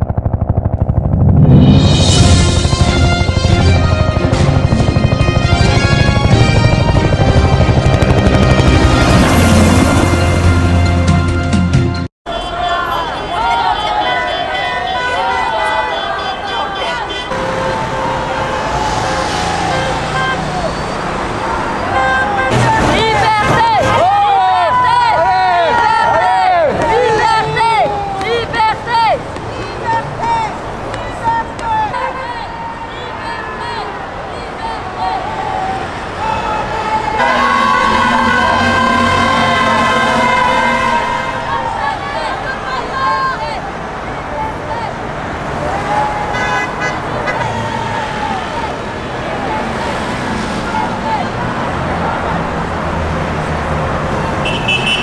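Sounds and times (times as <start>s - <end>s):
road traffic: 0.0s - 55.0s
long vehicle horn blast: 12.3s - 21.1s, 21.7s - 24.4s, 36.2s - 42.3s, 46.3s - 47.7s, 54.4s - 55.0s
car horns: 12.3s - 43.4s, 45.9s - 53.4s, 54.2s - 55.0s
people shouting: 12.3s - 44.9s, 45.5s - 52.6s
horn tooting short beeps: 54.4s - 55.0s.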